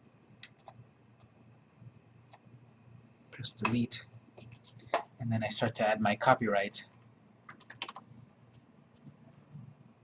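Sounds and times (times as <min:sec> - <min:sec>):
computer mouse and keyboard clicks: 0:00.3 - 0:01.3, 0:03.6 - 0:05.1, 0:07.0 - 0:09.7.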